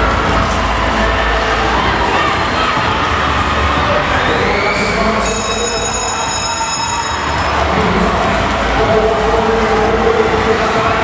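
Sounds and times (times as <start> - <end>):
crowd cheering: 0.0 - 11.0
bell ringing: 5.2 - 8.2.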